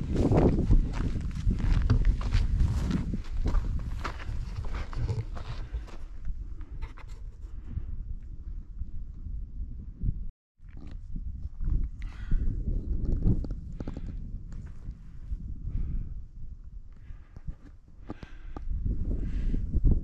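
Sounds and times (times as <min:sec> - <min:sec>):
footsteps on trail: 0:00.0 - 0:06.3
wind on microphone: 0:00.0 - 0:20.0
person breathing: 0:12.0 - 0:12.6, 0:16.9 - 0:19.8.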